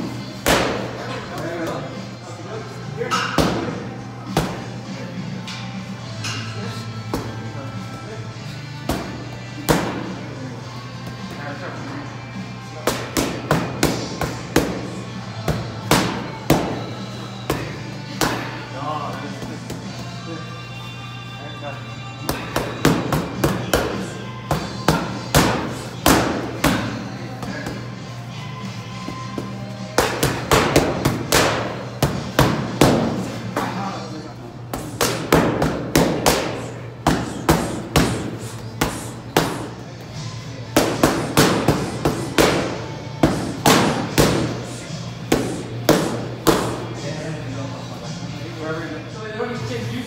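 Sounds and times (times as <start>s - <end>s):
music: 0.0s - 50.0s
boxing gloves striking mitts: 22.3s - 27.8s, 29.2s - 33.7s, 34.7s - 39.8s, 40.7s - 44.6s, 45.3s - 46.8s.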